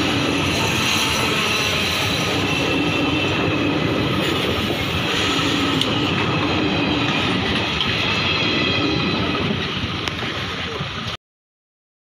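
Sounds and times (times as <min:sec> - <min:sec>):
train wheels on rails: 0:00.0 - 0:11.2.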